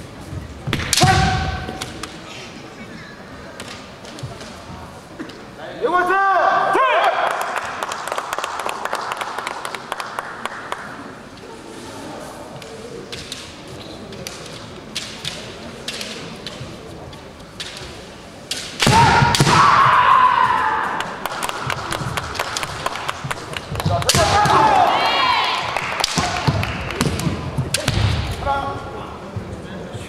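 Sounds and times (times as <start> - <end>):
bamboo swords clacking: 12.6 - 19.6
fencers shouting: 18.8 - 21.1, 24.1 - 26.5.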